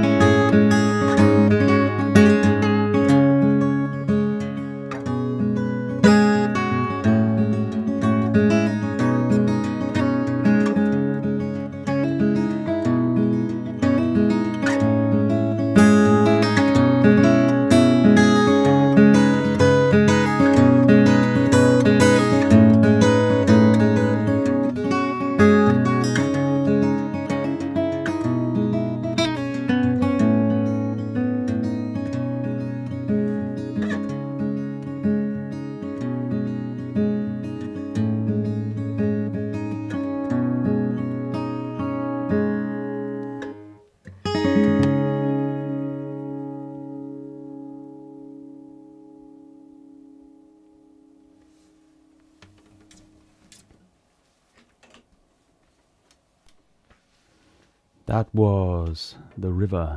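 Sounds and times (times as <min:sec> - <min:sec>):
fingerstyle acoustic guitar: 0:00.0 - 0:59.9.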